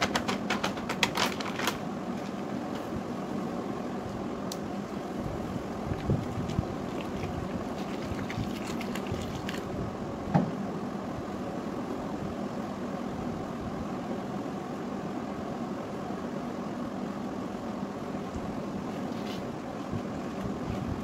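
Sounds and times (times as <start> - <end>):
steady background rumble and hiss: 0.0 - 21.0.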